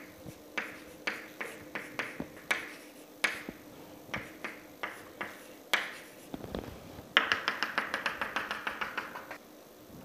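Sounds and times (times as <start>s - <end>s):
chalk tapping on chalkboard: 0.0s - 6.4s, 7.2s - 9.4s.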